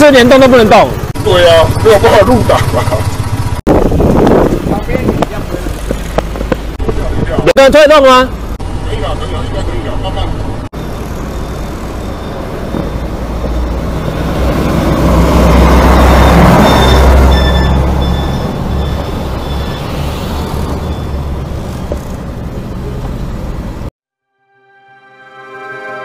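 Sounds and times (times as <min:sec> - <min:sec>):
vehicle rumble and road noise: 0:00.0 - 0:24.0.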